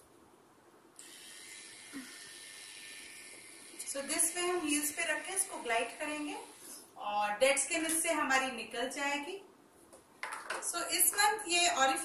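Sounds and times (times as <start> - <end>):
steady even hiss: 1.0 - 7.0.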